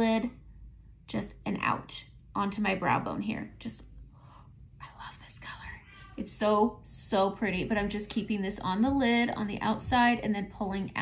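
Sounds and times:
woman whispering: 4.8s - 6.4s.

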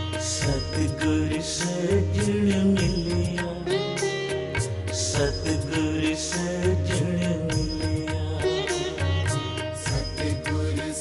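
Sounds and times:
harmonium melody: 0.0s - 11.0s
tabla strokes: 0.0s - 11.0s.

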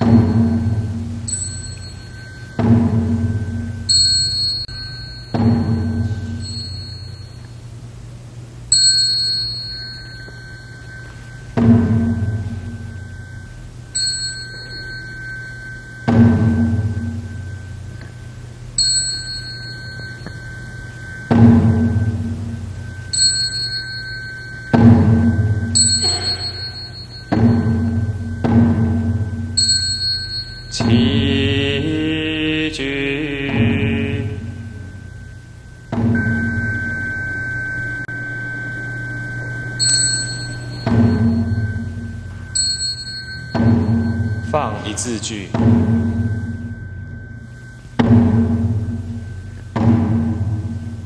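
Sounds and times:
high-pitched handbell ringing: 0.0s - 7.8s, 8.6s - 31.4s, 34.3s - 49.7s
deep bell ringing: 0.0s - 51.0s.

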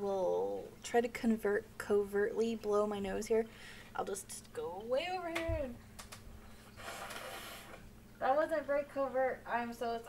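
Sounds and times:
person blowing nose: 6.7s - 7.8s.

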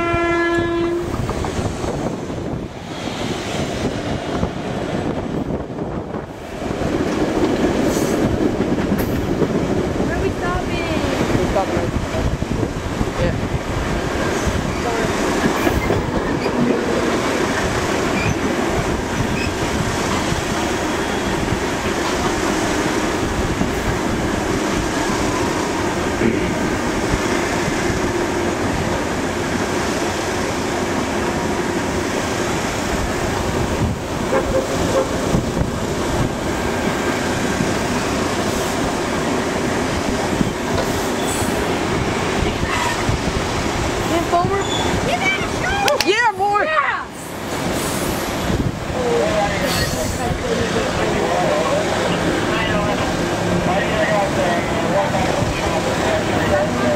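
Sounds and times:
train wheels rolling on rails: 0.0s - 56.9s
wind: 0.0s - 56.9s
sharp clicks of train wheels: 6.1s - 9.6s.

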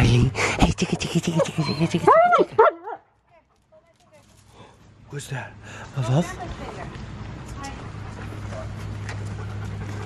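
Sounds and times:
dog panting: 7.6s - 10.0s.

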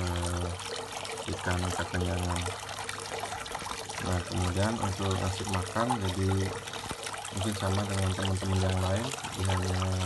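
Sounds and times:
water trickling into bucket: 0.0s - 10.0s.

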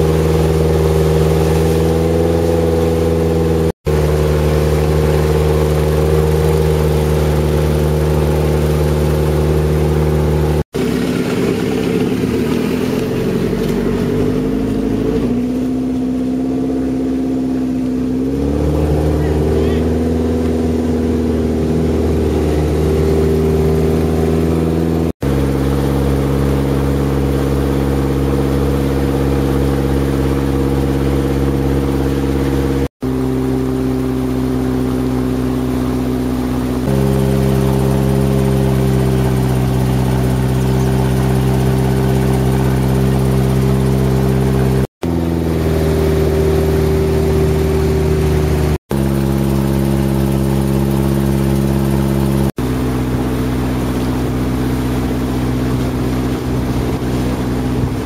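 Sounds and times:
boat engine droning: 0.0s - 58.0s.

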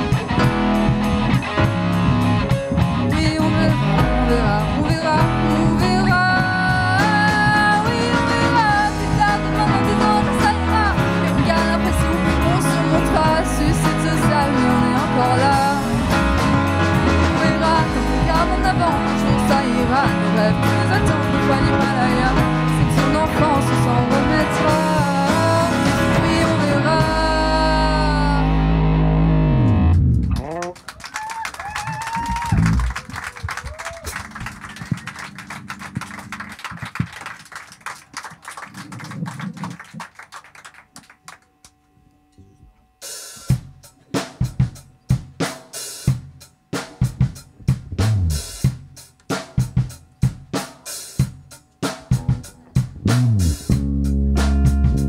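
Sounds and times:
pop-rock band playing live: 0.0s - 30.4s, 43.3s - 55.0s
drum hits: 43.5s - 55.0s.

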